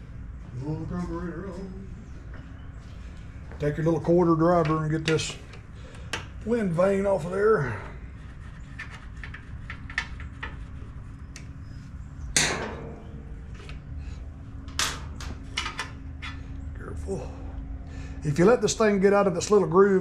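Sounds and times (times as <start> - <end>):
low background hum: 0.0 - 20.0
engine parts clattering: 12.4 - 16.6.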